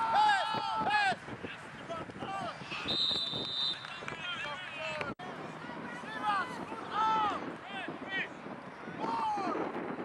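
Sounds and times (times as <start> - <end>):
referee's whistle blast: 2.9 - 3.9.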